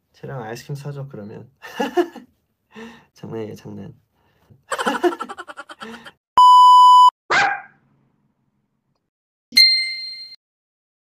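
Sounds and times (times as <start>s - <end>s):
man laughing: 1.6s - 2.2s, 4.7s - 6.2s
electronic beep: 6.4s - 7.1s
ringing ding: 9.5s - 10.4s.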